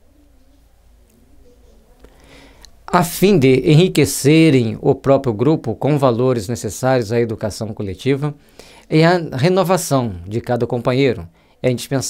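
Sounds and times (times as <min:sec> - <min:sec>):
bird cooing: 0:00.0 - 0:02.0.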